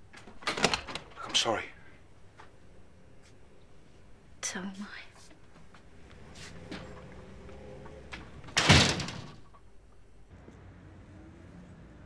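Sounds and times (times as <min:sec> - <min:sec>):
door slamming shut: 0:00.4 - 0:01.4, 0:08.2 - 0:09.5.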